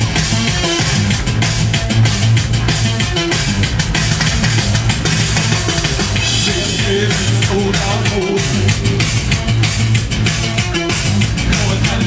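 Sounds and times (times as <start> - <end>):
live band playing: 0.0 - 12.0
steady drum beat: 0.0 - 12.0
sustained bass line: 0.0 - 12.0.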